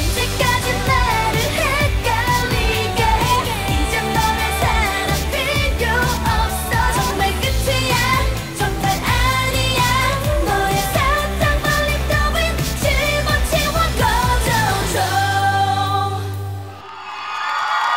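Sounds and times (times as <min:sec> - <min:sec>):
pop backing track with beat: 0:00.0 - 0:16.6
women singing: 0:00.0 - 0:16.7.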